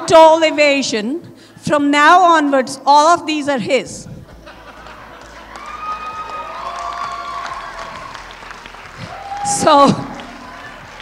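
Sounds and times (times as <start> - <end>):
laughter: 4.2 - 5.6
guests applauding: 4.4 - 11.0.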